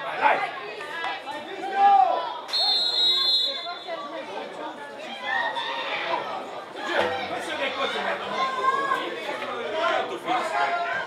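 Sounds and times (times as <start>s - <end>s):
voices chattering and calling out: 0.0s - 11.0s.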